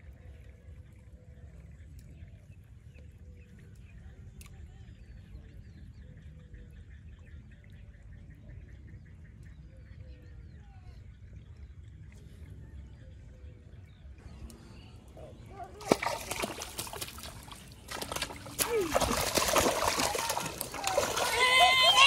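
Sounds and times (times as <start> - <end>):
excited voices: 15.2 - 16.7, 18.3 - 22.0
fish thrashing and splashing: 15.7 - 22.0.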